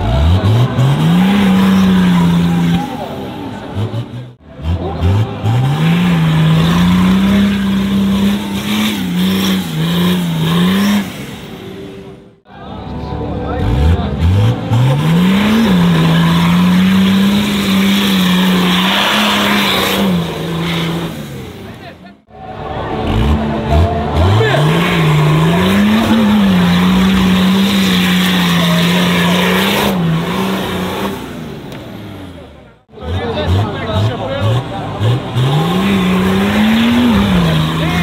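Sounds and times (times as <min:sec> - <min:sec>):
diesel engine revving hard: 0:00.0 - 0:12.4, 0:13.5 - 0:38.0.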